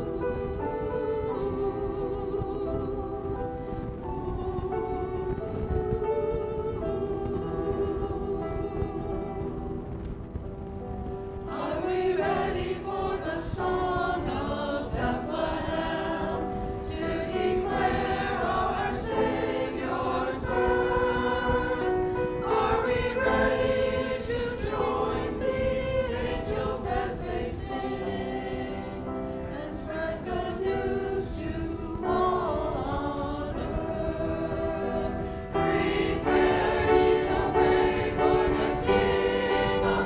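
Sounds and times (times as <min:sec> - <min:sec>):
church choir singing: 0:00.0 - 0:40.0.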